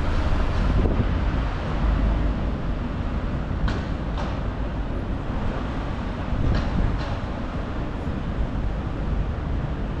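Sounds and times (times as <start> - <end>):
city traffic noise: 0.0 - 10.0
wind buffeting microphone: 0.0 - 10.0.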